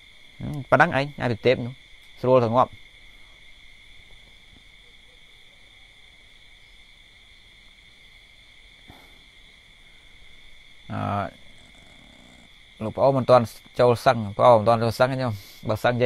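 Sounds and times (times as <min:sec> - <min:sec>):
faint background hiss: 0:00.0 - 0:16.0.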